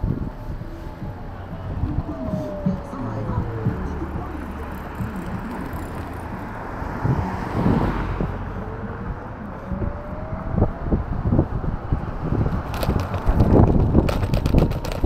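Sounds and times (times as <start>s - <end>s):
scooter jolting over bumps: 0.0s - 6.5s, 12.2s - 15.0s
low hum: 0.0s - 14.1s
wind and road noise: 0.0s - 15.0s.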